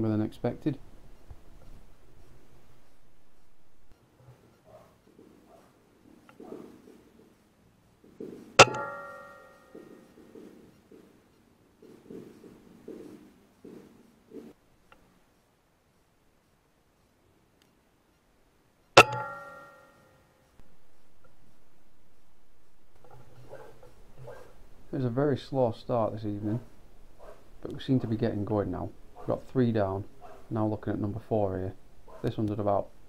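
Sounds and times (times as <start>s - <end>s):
steady hum: 0.0s - 4.1s, 18.9s - 27.7s.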